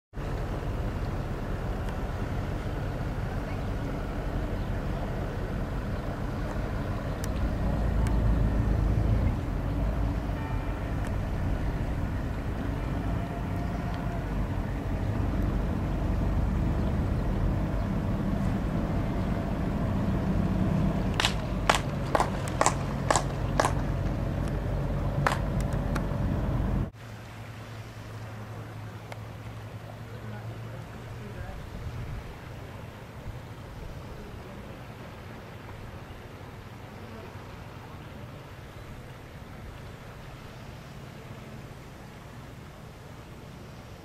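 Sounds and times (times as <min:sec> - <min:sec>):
boat engine running: 0:00.2 - 0:26.9.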